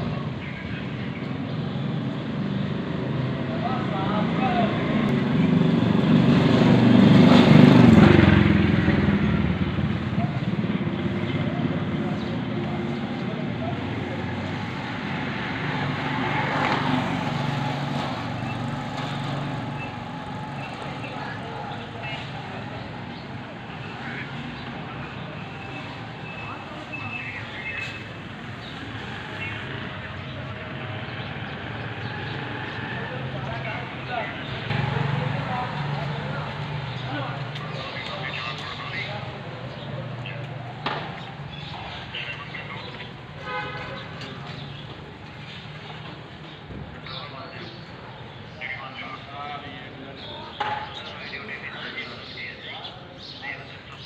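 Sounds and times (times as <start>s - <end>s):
vehicle engine passing by: 2.3s - 26.3s, 28.7s - 42.1s
faint distant voices: 7.3s - 54.0s.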